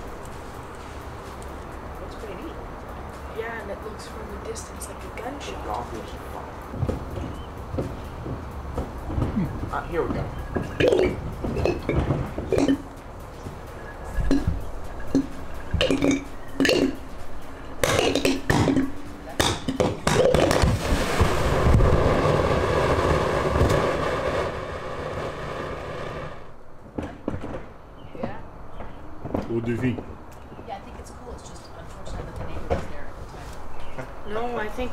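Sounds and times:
sharp chemical pops: 10.1s - 13.0s, 14.3s - 17.0s, 17.8s - 22.0s
whistling tones: 13.7s - 16.6s.

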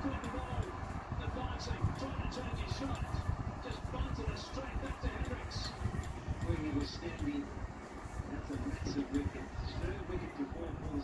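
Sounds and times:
indistinct voices from tv: 0.0s - 11.0s
rumbling background din: 0.0s - 11.0s.

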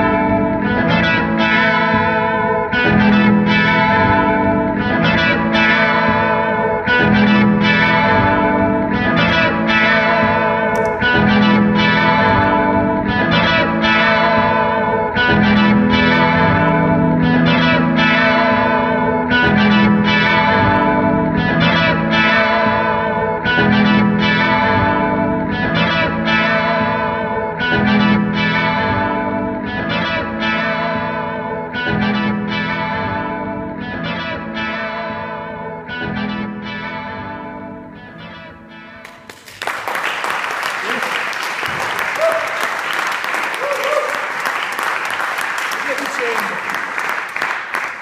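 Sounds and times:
electric guitar low figure: 0.0s - 39.6s
applause: 39.0s - 48.0s.

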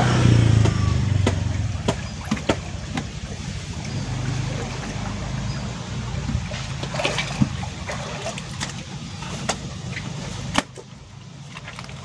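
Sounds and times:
water rushing in a stream: 0.0s - 12.0s.

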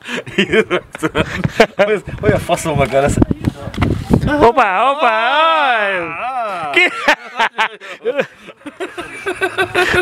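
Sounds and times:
man chuckling: 6.6s - 10.0s.

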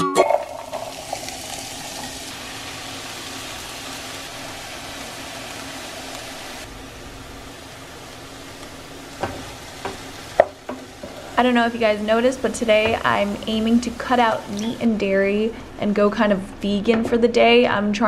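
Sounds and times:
vegetables sizzling in a frying pan: 0.6s - 15.0s.

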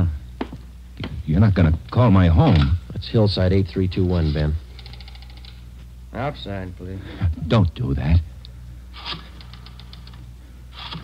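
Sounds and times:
rotary telephone dial clicking: 9.0s - 10.2s.

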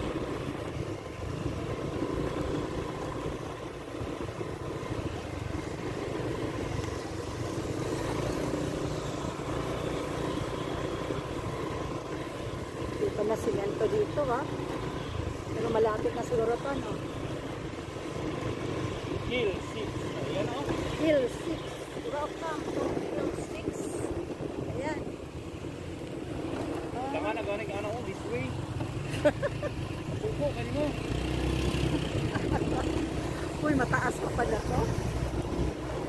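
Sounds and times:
motorcycle engine rumbling: 0.0s - 36.0s
people talking: 20.3s - 24.1s, 33.6s - 35.0s.

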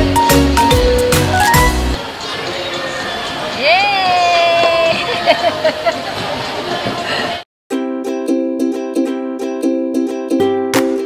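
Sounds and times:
ice rink crowd noise: 2.0s - 7.4s.

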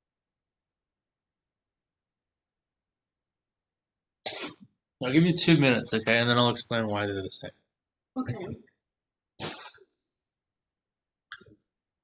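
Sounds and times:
short cough: 4.3s - 4.7s, 9.4s - 9.8s.

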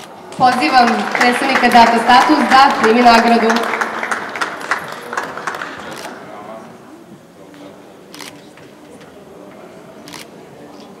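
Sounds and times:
low murmur of voices: 0.0s - 11.0s.

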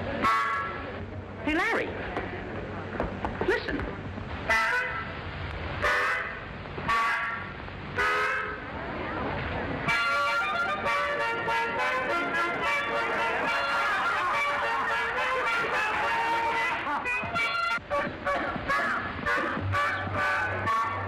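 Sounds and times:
short honking horn toots: 0.2s - 0.8s, 4.5s - 5.1s, 5.8s - 7.4s, 8.0s - 8.6s, 9.9s - 21.0s
music: 9.8s - 21.0s.

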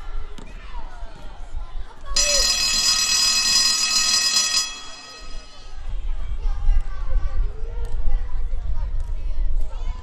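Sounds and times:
electric school bell ringing: 2.2s - 6.0s.

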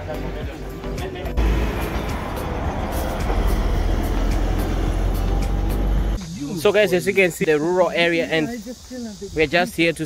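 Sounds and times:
vehicle road noise and rumble: 0.0s - 6.4s.

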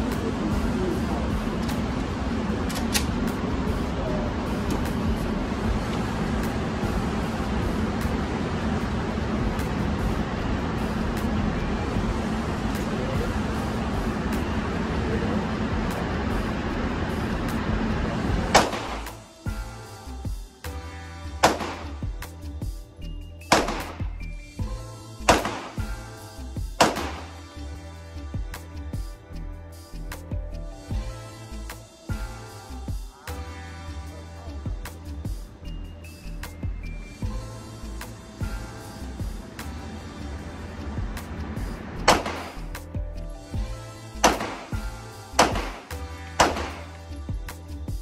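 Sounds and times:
steady background noise: 0.0s - 20.8s, 30.2s - 48.0s
background music: 0.0s - 48.0s
loud gunshots: 18.5s - 19.2s, 21.4s - 22.0s, 23.5s - 24.0s, 25.3s - 25.8s, 26.8s - 27.3s, 42.1s - 42.6s, 44.2s - 44.8s, 45.4s - 46.9s.

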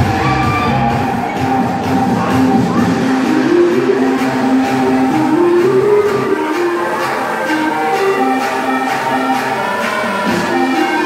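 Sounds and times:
loud music over sound system: 0.0s - 11.0s.

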